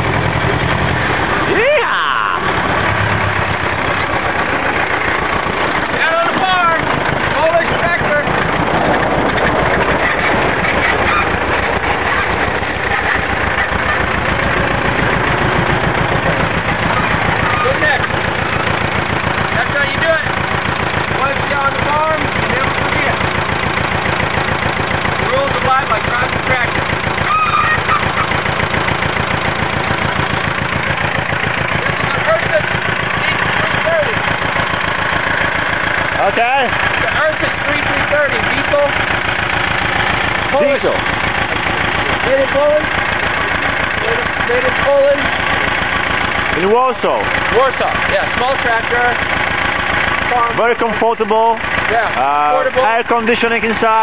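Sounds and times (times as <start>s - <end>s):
tractor engine chugging: 0.0s - 54.0s.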